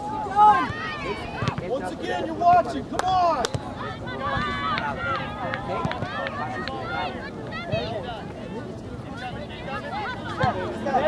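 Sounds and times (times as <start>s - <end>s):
crowd shouting and calling: 0.0s - 11.0s.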